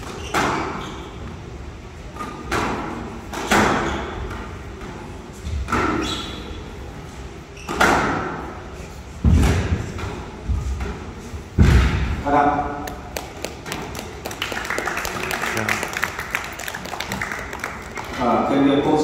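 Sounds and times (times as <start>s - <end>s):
crowd clapping and chattering: 12.8s - 18.6s.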